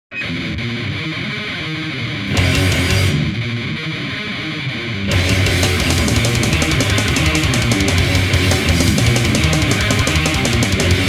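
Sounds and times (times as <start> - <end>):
distorted electric guitars: 0.1 - 11.0.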